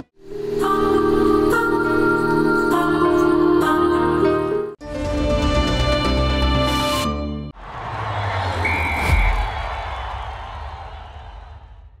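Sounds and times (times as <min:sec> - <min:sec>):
stadium crowd noise: 0:07.6 - 0:12.0
short whistle blast: 0:08.6 - 0:09.7.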